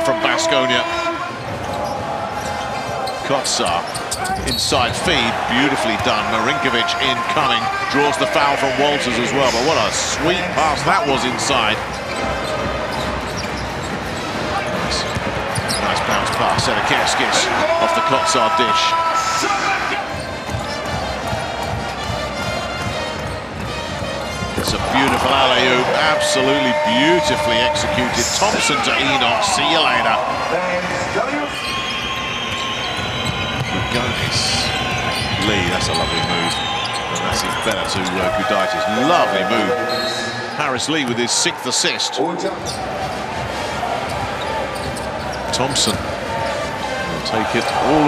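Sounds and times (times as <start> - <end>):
arena crowd noise: 0.0 - 48.0
high shoe squeaks: 1.4 - 4.8, 11.8 - 16.9, 31.5 - 40.4, 43.9 - 46.7
basketball bouncing: 11.9 - 15.8, 20.1 - 25.2.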